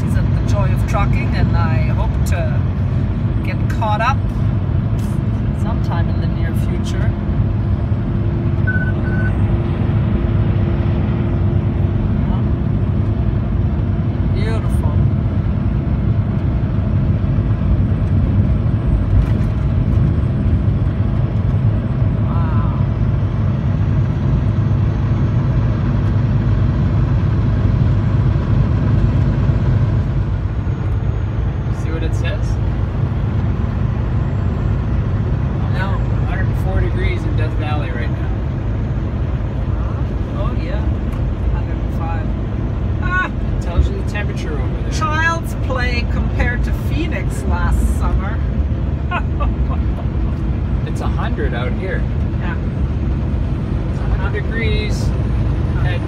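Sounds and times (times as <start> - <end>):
low hum: 0.0 - 56.0
truck engine drone: 0.0 - 56.0.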